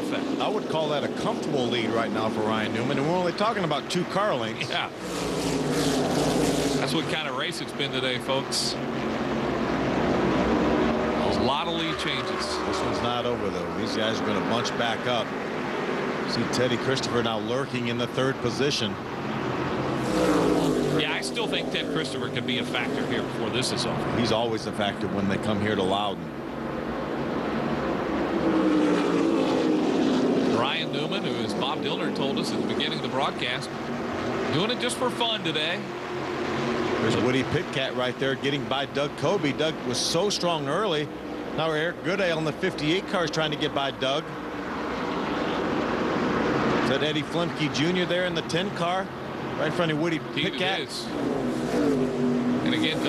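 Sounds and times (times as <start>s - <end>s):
race car engines running: 0.0s - 53.0s
race car passing by: 4.6s - 18.0s, 19.3s - 25.9s, 27.4s - 39.7s, 49.5s - 53.0s.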